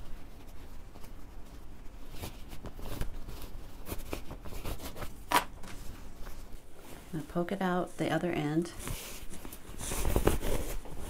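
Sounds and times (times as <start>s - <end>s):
cotton fabric rustling: 0.0s - 11.0s
soft fabric scrapes: 8.7s - 11.0s.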